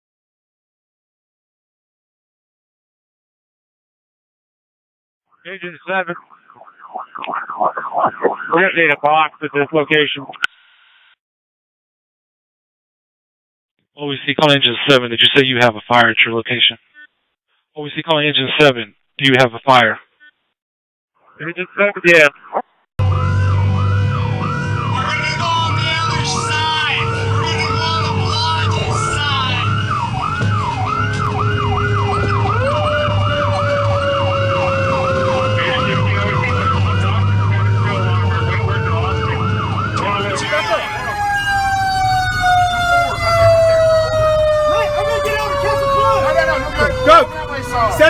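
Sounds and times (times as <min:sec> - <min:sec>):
siren tone gliding down: 0:05.4 - 0:10.4, 0:22.3 - 0:48.0
fire engine siren yelp: 0:05.9 - 0:09.8, 0:23.0 - 0:48.0
truck engine drone: 0:23.0 - 0:48.0.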